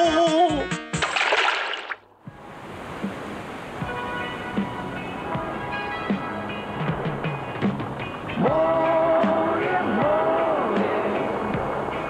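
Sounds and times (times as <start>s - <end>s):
body splashing into sea: 1.0s - 2.1s
surf washing: 1.0s - 12.0s
quiet music: 2.2s - 12.0s.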